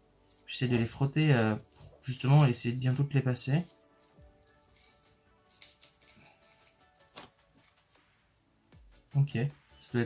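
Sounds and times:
faint background music: 0.0 - 10.0
cards clicking and rustling: 3.7 - 8.1.

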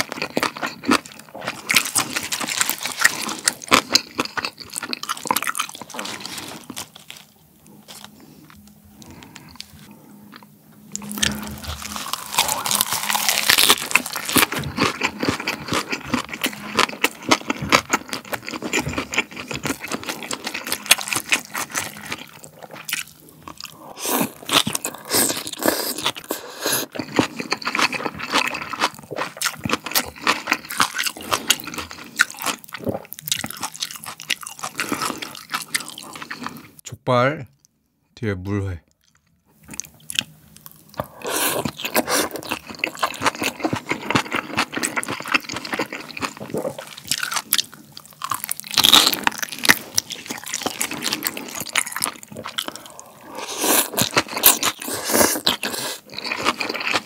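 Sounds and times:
close chewing and crunching lettuce: 0.0 - 36.8, 38.9 - 57.0.

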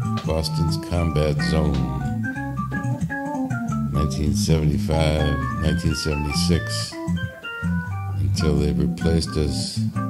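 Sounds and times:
organ playing a tune: 0.0 - 9.9.

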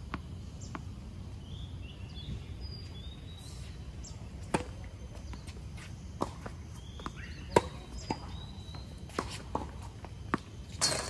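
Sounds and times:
birds chirping: 0.4 - 10.6
tennis ball bouncing on hard court: 4.4 - 5.5, 6.2 - 11.0.

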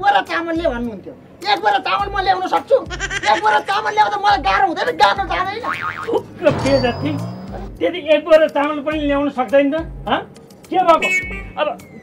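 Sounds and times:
background music: 0.0 - 12.0
man talking: 0.0 - 12.0
springy boing sound effect: 5.7 - 7.7.

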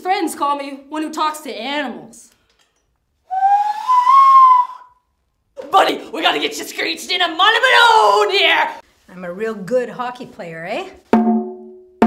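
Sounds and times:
woman blowing hand whistle: 3.3 - 5.1.

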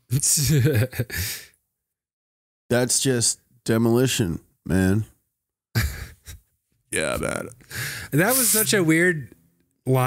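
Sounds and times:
man laughing: 0.1 - 1.5, 5.8 - 6.5
breathy exhale: 7.7 - 8.1.

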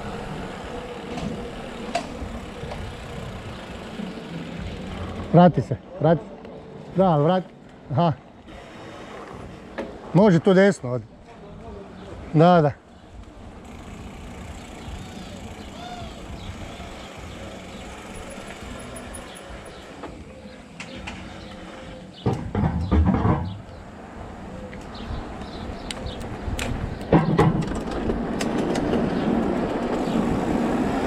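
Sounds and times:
bike tyres rolling: 0.0 - 5.7, 13.0 - 31.0
rattling on cobblestones: 0.0 - 5.8, 13.1 - 31.0.

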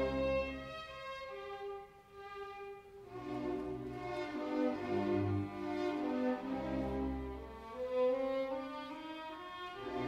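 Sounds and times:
chamber orchestra playing: 0.0 - 10.0.

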